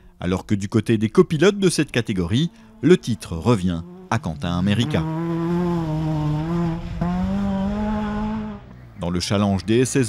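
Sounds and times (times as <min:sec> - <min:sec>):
rally car engine revving high: 0:01.4 - 0:09.0.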